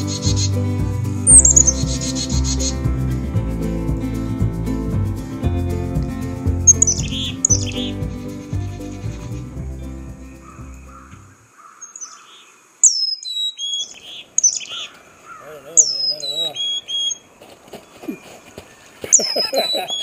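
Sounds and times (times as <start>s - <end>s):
chickadees calling: 0.0s - 3.2s, 6.3s - 20.0s
background music: 0.0s - 11.4s.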